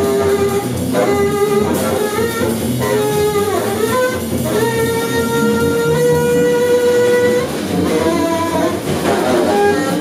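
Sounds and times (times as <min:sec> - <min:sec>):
double bass: 0:00.0 - 0:10.0
drum kit: 0:00.0 - 0:10.0
saxophone playing: 0:00.0 - 0:10.0.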